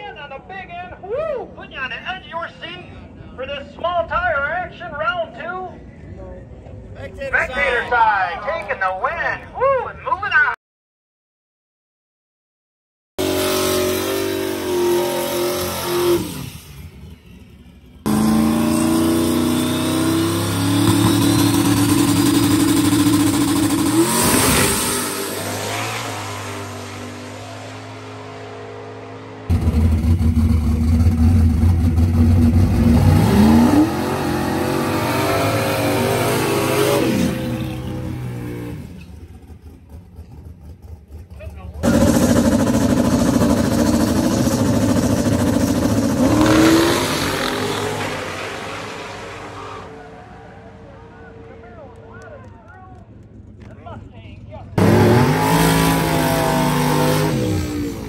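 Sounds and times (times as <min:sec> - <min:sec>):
tyre burnout: 0:13.2 - 0:52.2
race car engines revving: 0:13.2 - 0:58.0.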